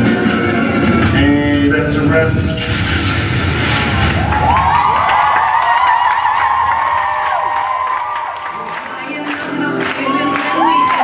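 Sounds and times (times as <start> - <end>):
dance music: 0.0 - 11.0
audience cheering and screaming: 3.6 - 9.0, 9.6 - 11.0
scattered clapping: 4.0 - 11.0.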